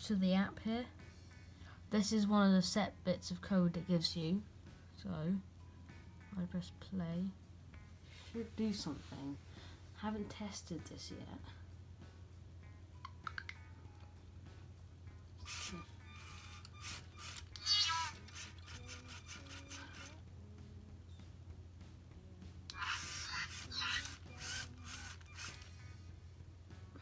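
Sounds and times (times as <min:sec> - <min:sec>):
robot motor and gear whirring: 0:15.5 - 0:20.2, 0:22.7 - 0:25.8.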